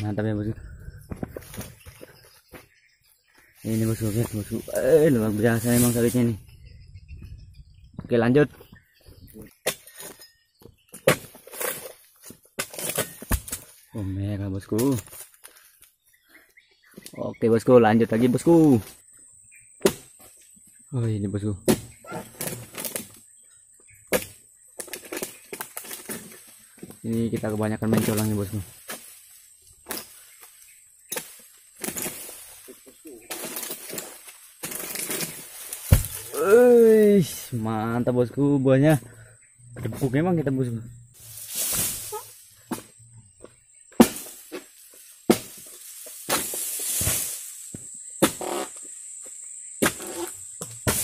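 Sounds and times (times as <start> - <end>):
palm fronds rustling: 1.1 - 6.4, 11.1 - 14.0, 21.9 - 23.4, 24.1 - 37.7, 39.8 - 51.0
sharp knocks on palm trunk: 35.9 - 36.2.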